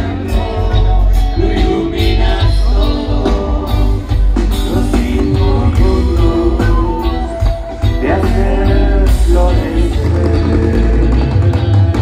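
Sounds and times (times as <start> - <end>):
electric guitars: 0.0 - 12.0
heavy bass line: 0.0 - 12.0.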